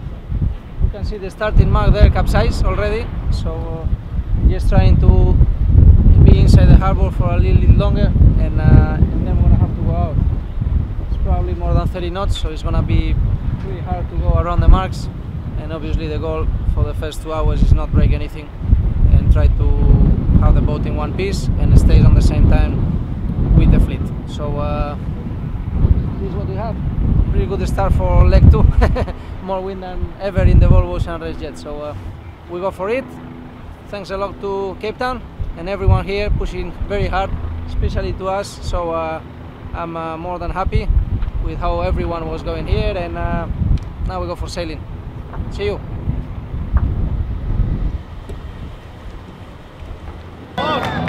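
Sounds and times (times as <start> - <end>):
heavy low rumble: 0.0 - 51.0
wind buffeting microphone: 0.0 - 51.0
crowd cheering: 50.6 - 51.0
held voiced sound: 50.6 - 51.0.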